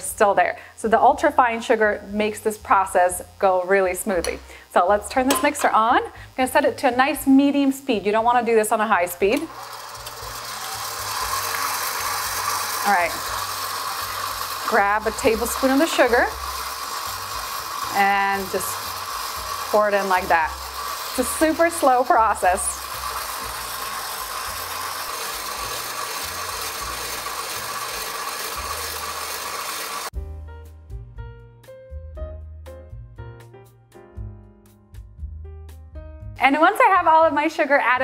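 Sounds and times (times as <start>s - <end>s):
stand mixer whirring: 9.4s - 30.1s.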